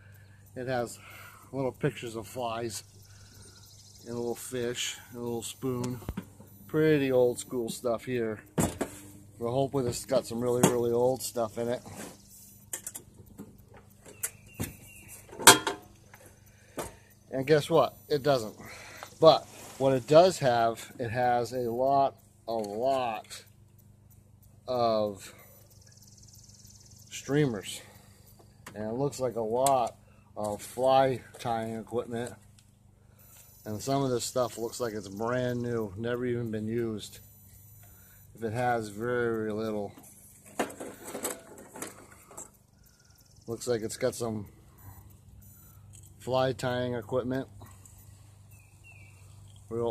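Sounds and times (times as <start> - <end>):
rustles and clicks of small items: 40.0 - 42.6.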